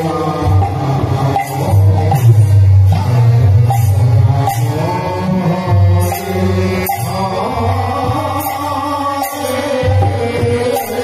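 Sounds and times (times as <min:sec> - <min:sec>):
hand cymbals: 0:00.0 - 0:11.0
harmonium: 0:00.0 - 0:11.0.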